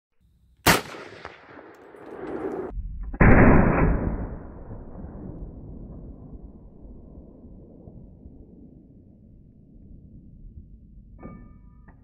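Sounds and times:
rifle shot: 0:00.6 - 0:06.1
deep muffled boom: 0:02.7 - 0:11.2.

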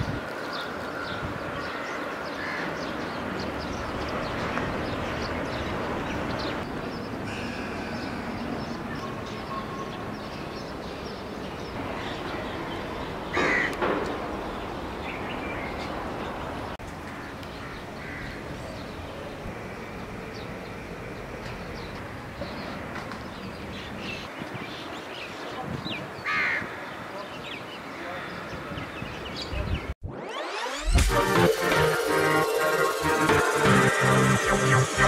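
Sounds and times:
steady background noise: 0:00.0 - 0:25.7
crow cawing: 0:01.7 - 0:02.8, 0:13.3 - 0:13.8.

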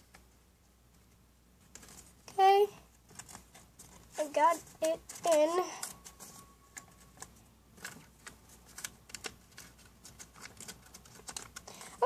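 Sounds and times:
paper envelope crackling: 0:03.1 - 0:12.0.

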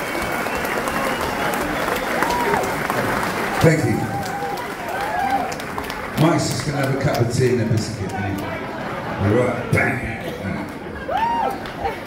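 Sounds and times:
audience applauding: 0:00.0 - 0:09.4, 0:10.6 - 0:12.0.

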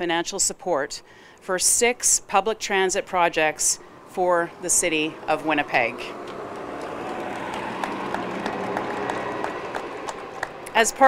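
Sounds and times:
audience applause: 0:06.2 - 0:10.7.

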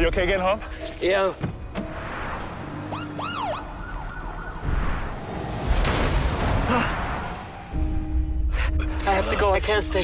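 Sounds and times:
police siren wailing: 0:02.7 - 0:05.4.

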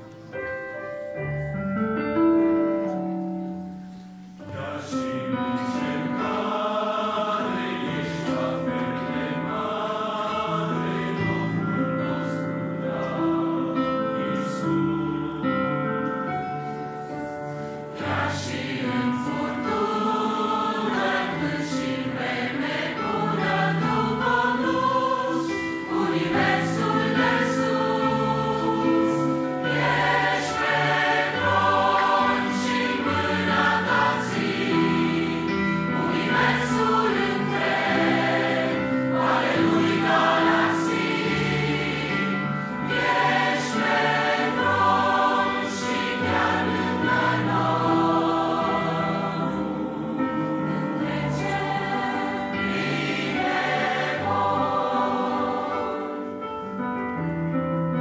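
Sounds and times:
choir singing a hymn: 0:02.7 - 0:57.3.

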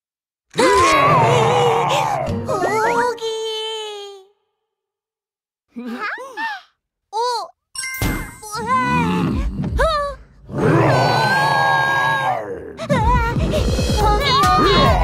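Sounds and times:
cartoon dinosaur roaring: 0:00.6 - 0:02.3, 0:08.6 - 0:12.9
music: 0:01.8 - 0:03.1, 0:12.9 - 0:15.0.

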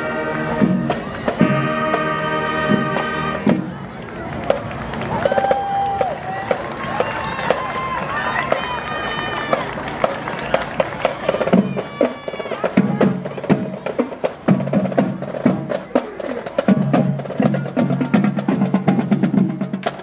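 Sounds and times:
woodwinds and brass melody: 0:00.0 - 0:04.1
drumline cadence: 0:00.0 - 0:20.0.

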